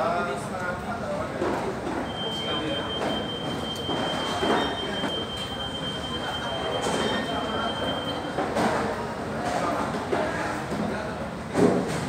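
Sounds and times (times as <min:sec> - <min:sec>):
voices and bustle in a hall: 0:00.0 - 0:12.0
high-pitched electronic alarm tone: 0:02.1 - 0:08.3.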